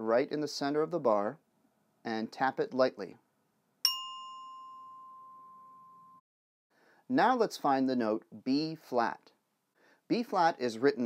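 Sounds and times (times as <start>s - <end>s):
glockenspiel note ringing: 3.9s - 6.2s.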